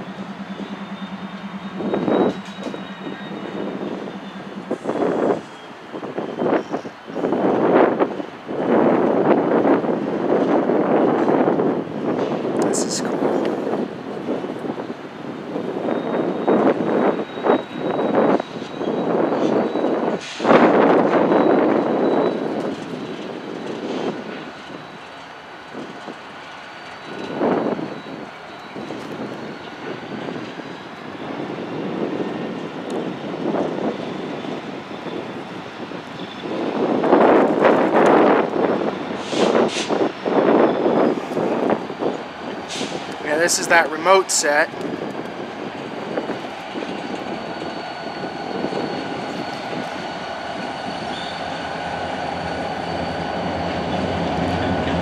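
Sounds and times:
diesel locomotive engine rumble: 0:00.0 - 0:55.0.

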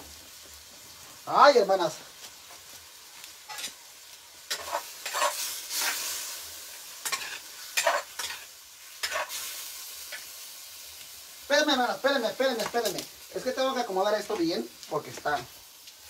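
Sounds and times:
food sizzling in pot: 0:00.0 - 0:16.0.

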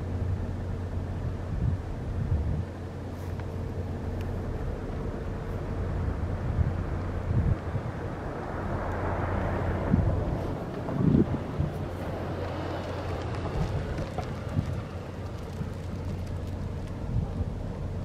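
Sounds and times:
steady low hum: 0:00.0 - 0:18.0
wind gusts on microphone: 0:00.0 - 0:18.0.

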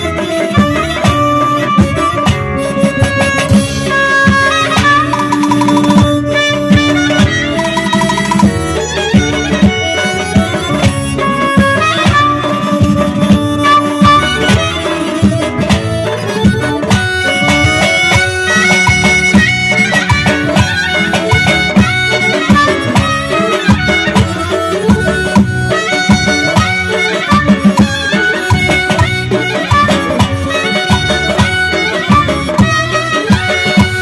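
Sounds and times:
accordion: 0:00.0 - 0:34.0
clarinet melody: 0:00.0 - 0:34.0
steady drum beat: 0:00.0 - 0:34.0.

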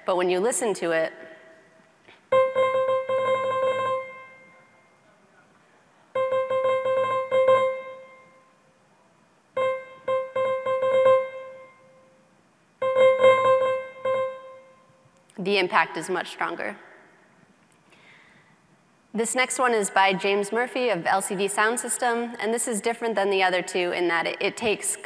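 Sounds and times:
piano-like note strikes: 0:02.3 - 0:05.0.

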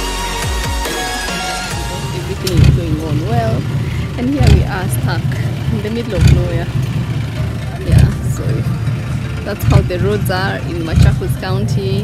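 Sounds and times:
loud low rumble: 0:00.9 - 0:12.0.

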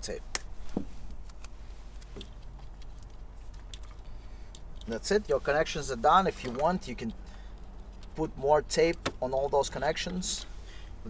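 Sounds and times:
steady low hum: 0:00.0 - 0:11.0
electrical tape clicks and rustles: 0:00.3 - 0:05.2.

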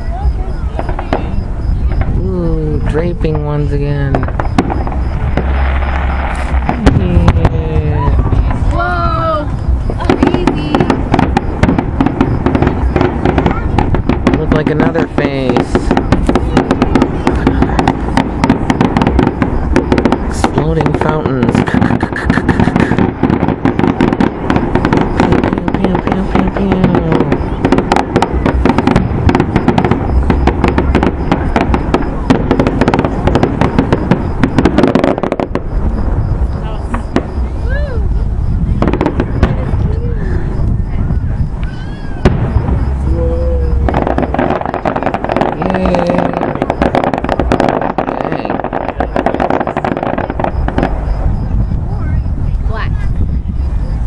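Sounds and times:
fireworks bangs and crackling: 0:00.0 - 0:54.0.

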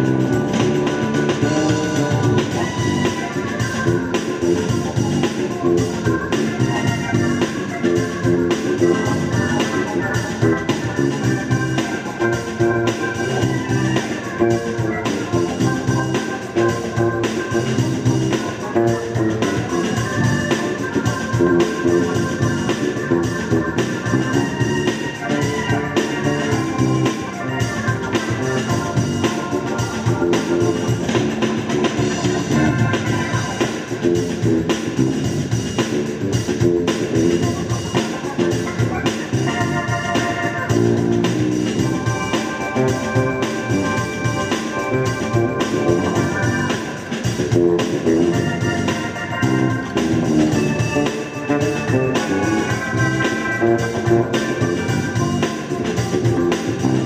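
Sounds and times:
electric bass guitar: 0:00.0 - 0:57.0
funk organ chords: 0:00.0 - 0:57.0
steady beat: 0:00.0 - 0:57.0
synthesizer keyboard: 0:00.0 - 0:57.0.

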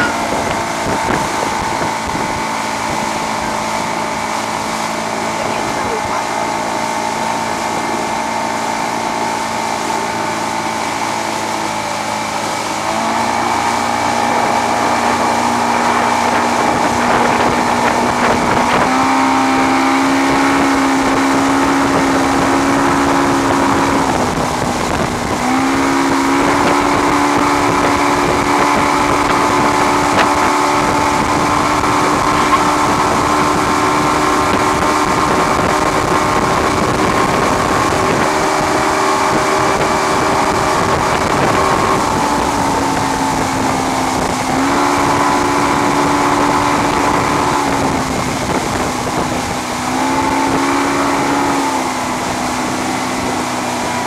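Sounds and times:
motorboat engine under load: 0:00.0 - 0:54.0
water rushing: 0:00.0 - 0:54.0
wind: 0:00.0 - 0:54.0.

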